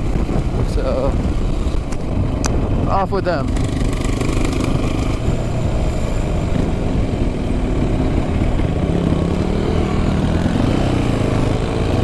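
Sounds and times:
wind rumble on microphone: 0.0 - 12.0
dirt bike engine running: 1.4 - 12.0.

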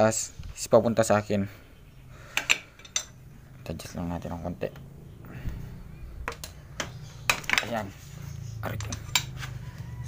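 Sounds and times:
wrench clinking on metal: 2.4 - 3.2.

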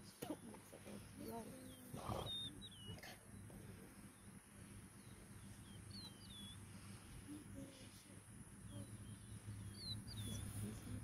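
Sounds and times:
bird chirping: 0.3 - 7.4, 8.4 - 11.0
hippopotamuses grunting: 1.7 - 3.8.

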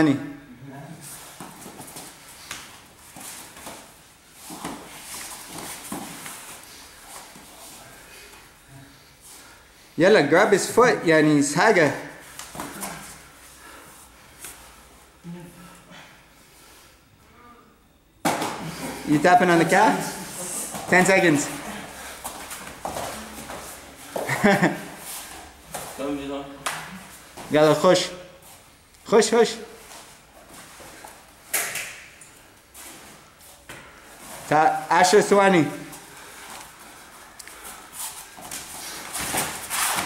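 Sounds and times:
bodies scuffling on foam mats: 22.0 - 26.1, 37.8 - 40.0.

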